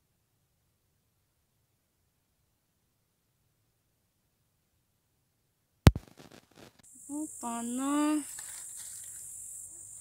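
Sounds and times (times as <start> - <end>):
sharp click: 5.9 - 6.1
crickets chirring: 6.8 - 10.0.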